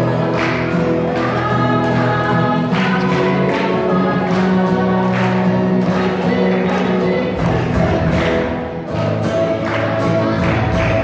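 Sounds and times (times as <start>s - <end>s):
children singing in unison: 0.0s - 8.6s
strummed acoustic guitar: 0.0s - 11.0s.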